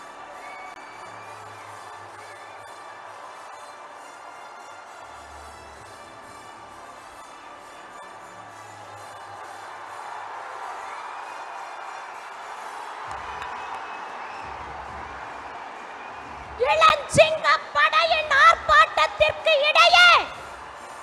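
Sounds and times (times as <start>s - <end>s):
background music: 0.0s - 21.0s
large crowd cheering: 0.0s - 21.0s.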